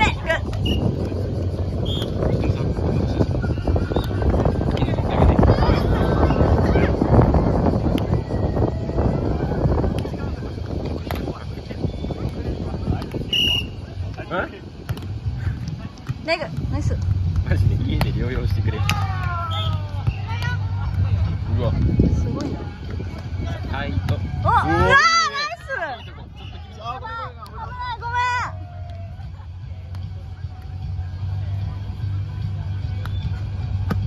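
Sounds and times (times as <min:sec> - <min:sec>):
wind buffeting microphone: 0:00.0 - 0:18.8, 0:21.1 - 0:28.2
steady low rumble: 0:00.0 - 0:34.0
players shouting: 0:18.6 - 0:21.4, 0:23.6 - 0:29.8.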